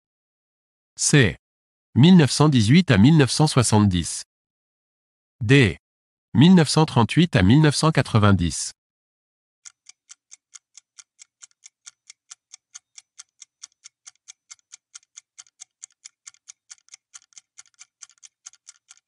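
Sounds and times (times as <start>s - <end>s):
rapid clock-like ticking: 9.6s - 19.0s.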